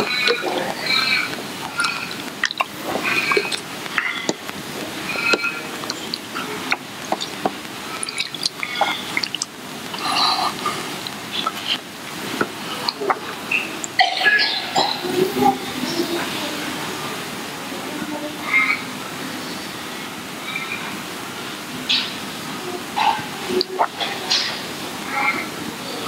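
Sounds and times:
people murmuring prayers: 0.0 - 26.0
steady background hiss: 0.0 - 26.0.

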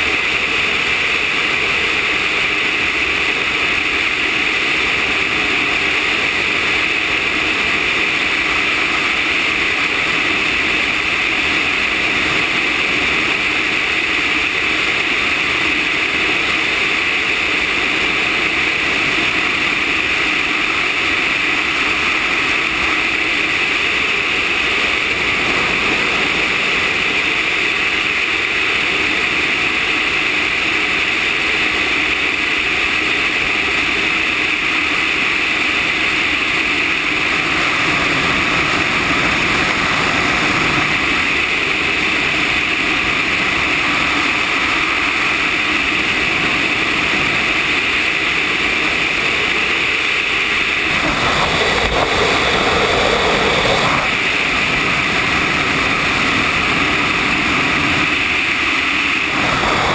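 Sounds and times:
airflow rushing: 37.3 - 59.9.

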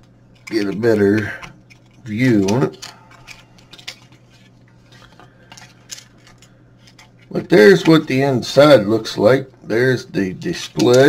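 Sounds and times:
plastic housing clicks and rattles: 0.0 - 7.2.

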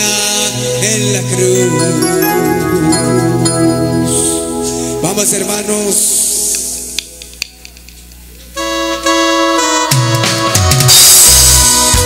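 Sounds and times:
live band music: 0.0 - 7.4, 8.6 - 12.0
organ-like keyboard chords: 0.0 - 12.0.

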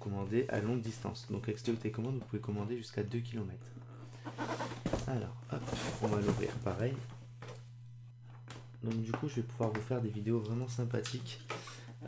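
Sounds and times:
steady low hum: 0.0 - 12.0
hands handling cardboard box: 4.8 - 6.8.

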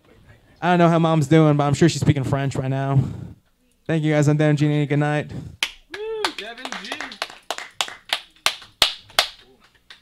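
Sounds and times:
sparse applause: 5.6 - 10.0.

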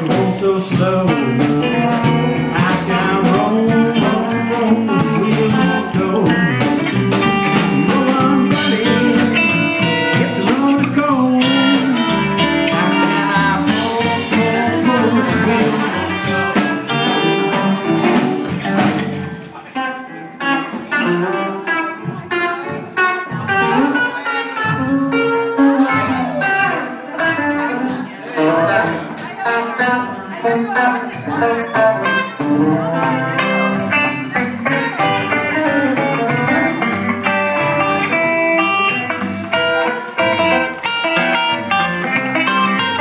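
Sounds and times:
bass guitar: 0.0 - 43.0
drums: 0.0 - 43.0
fingerpicked electric guitar: 0.0 - 43.0.

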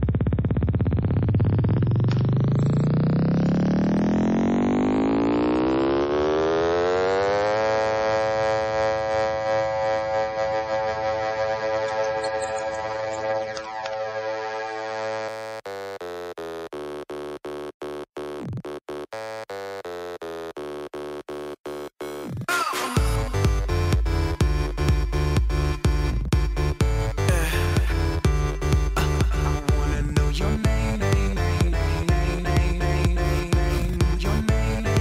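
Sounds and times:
rising synthesizer chord: 0.0 - 16.1, 22.9 - 35.0.

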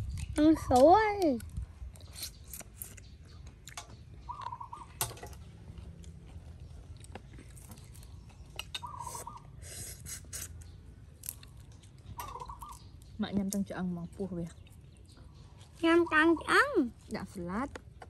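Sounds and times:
soft chewing: 1.3 - 15.8.

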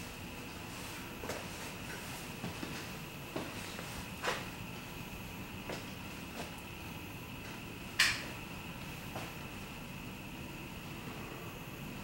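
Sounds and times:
steady hiss with high hum: 0.0 - 12.0.

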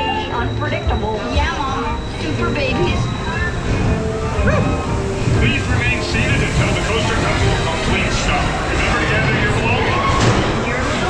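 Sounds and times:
people's voices: 0.0 - 11.0
roller coaster wheels rumbling: 0.0 - 11.0.

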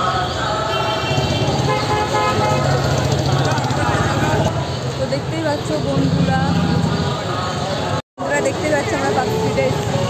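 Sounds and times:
car horns tooting: 0.0 - 4.5
traffic: 0.0 - 10.0
crowd voices: 2.3 - 10.0.

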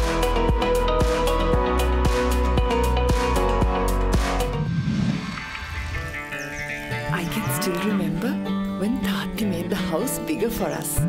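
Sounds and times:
quiet background music: 5.3 - 11.0
cow mooing: 7.1 - 8.4.

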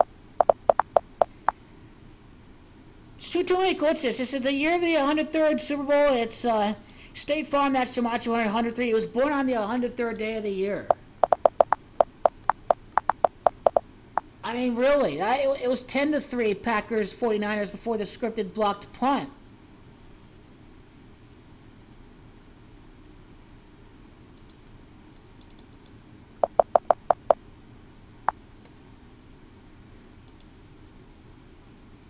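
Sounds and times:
keyboard keys clicking: 0.0 - 1.4, 11.2 - 13.8, 26.4 - 27.4.

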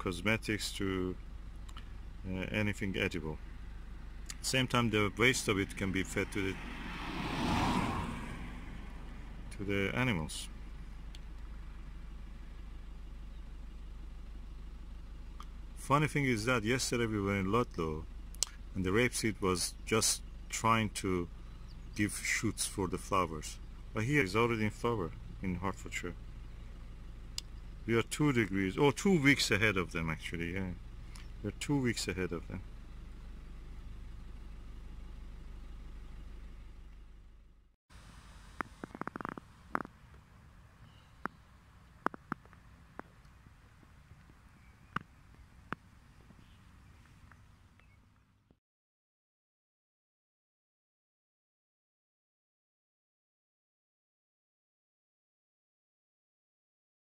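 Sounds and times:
engine running low rumble: 0.0 - 48.6
car passing by: 5.6 - 9.5.

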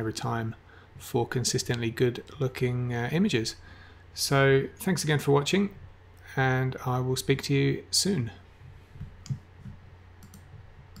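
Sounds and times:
low steady hum: 0.0 - 11.0
computer mouse clicks: 9.2 - 11.0.

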